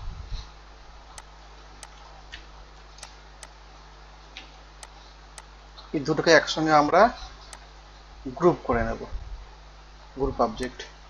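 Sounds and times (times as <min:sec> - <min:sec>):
faint steady low hum: 0:00.0 - 0:11.0.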